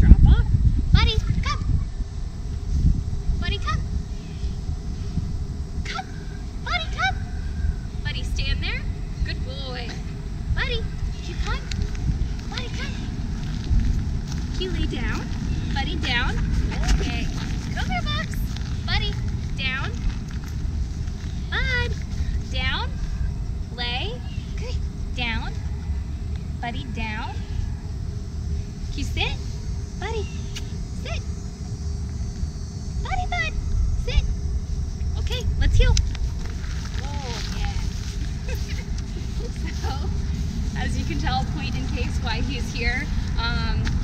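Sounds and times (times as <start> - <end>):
wind rumbling on microphone: 0.0 - 44.0.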